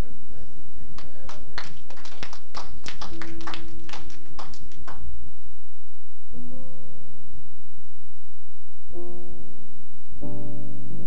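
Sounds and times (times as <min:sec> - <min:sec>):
hand claps: 0:01.0 - 0:05.0.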